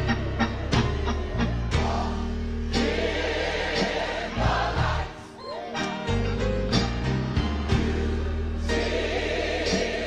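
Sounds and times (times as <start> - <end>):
band with steady beat and bass: 0.0 - 5.1, 5.9 - 8.9
choir singing gospel music: 0.0 - 10.0.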